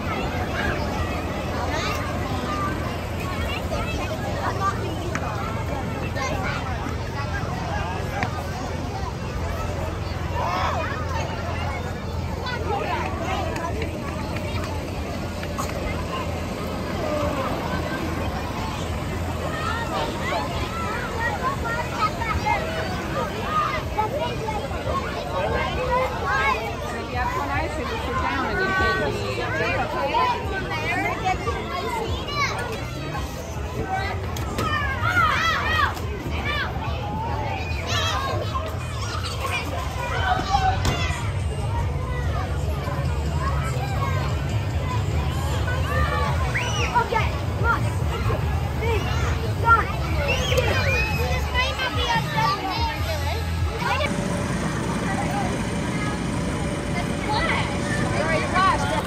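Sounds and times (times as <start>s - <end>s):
blower fan humming: 0.0s - 31.4s, 41.3s - 59.0s
children shouting and chattering: 0.0s - 59.0s
crowd babble: 0.0s - 59.0s
children calling out: 30.4s - 59.0s.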